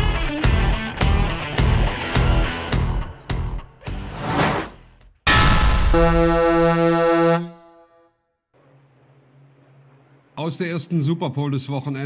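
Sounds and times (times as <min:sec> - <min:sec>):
rising whoosh: 0:04.1 - 0:04.8
sudden loud hit: 0:05.3 - 0:06.8
blaring low horn-like tone: 0:05.9 - 0:08.1.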